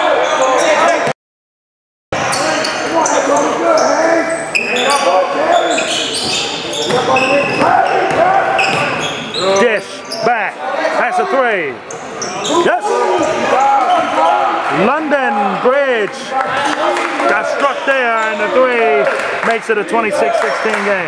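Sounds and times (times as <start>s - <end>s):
echoing crowd voices: 0.0s - 1.1s, 2.2s - 21.0s
shoe squeals: 0.0s - 1.1s, 2.2s - 10.6s, 11.8s - 14.6s, 18.1s - 18.6s
basketball bouncing on court: 6.2s - 9.0s.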